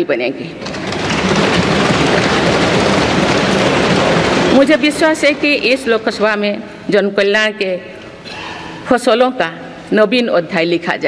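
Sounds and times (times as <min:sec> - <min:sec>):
people thumping on desks: 0:00.6 - 0:05.4.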